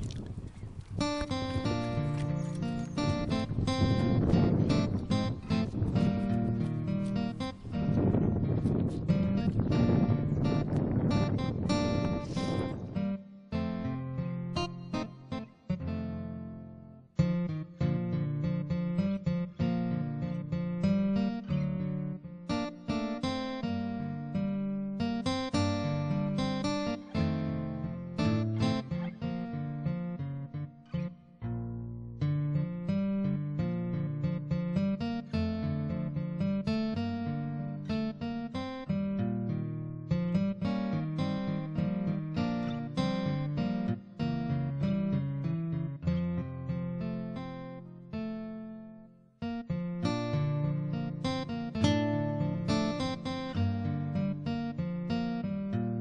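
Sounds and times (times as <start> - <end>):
acoustic guitar music: 0.0 - 56.0.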